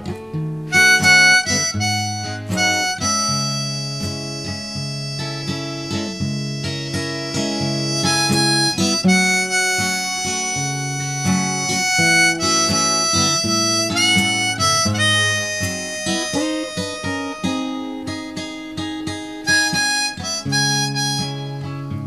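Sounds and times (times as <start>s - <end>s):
acoustic guitar picked and strummed: 0.0s - 22.0s
harmonica bending long notes: 0.7s - 22.0s.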